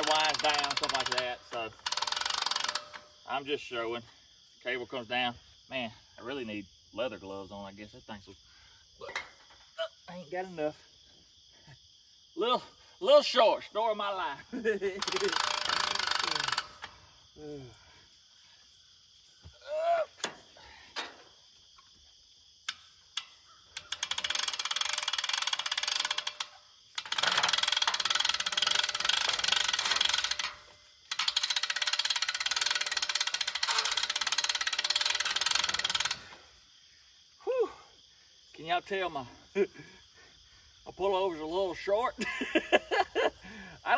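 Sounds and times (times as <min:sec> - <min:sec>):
hand-crank winch ratcheting: 0:00.0 - 0:03.3, 0:14.9 - 0:17.0, 0:22.7 - 0:36.4.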